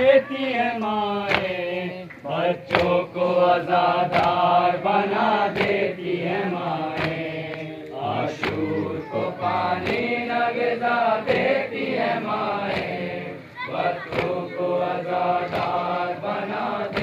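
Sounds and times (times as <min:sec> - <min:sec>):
men chanting a lament: 0:00.0 - 0:17.0
hands slapping chests: 0:00.8 - 0:03.0, 0:04.0 - 0:04.5, 0:05.5 - 0:05.9, 0:06.9 - 0:07.8, 0:08.4 - 0:08.7, 0:09.8 - 0:10.2, 0:12.6 - 0:13.1, 0:14.1 - 0:14.4.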